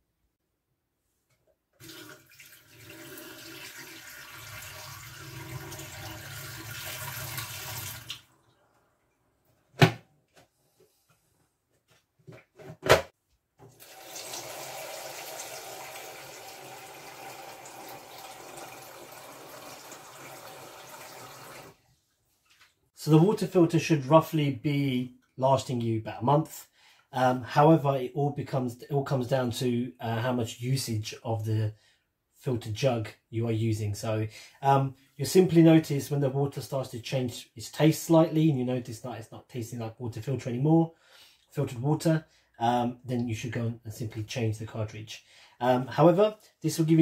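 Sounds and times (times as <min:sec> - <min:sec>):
water running into steel sink: 0:01.8 - 0:08.4, 0:13.8 - 0:21.8.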